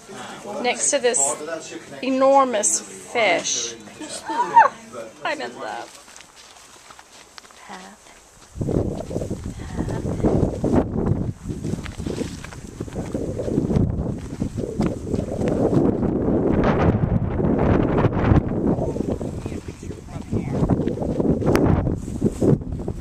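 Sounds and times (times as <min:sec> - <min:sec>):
footsteps on dirt path: 0:04.3 - 0:17.0, 0:18.5 - 0:23.0
wind buffeting microphone: 0:08.4 - 0:23.0.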